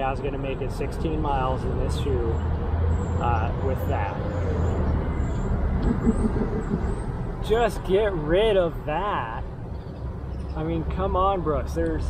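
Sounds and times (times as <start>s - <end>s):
low rumble of city traffic: 0.0s - 12.0s.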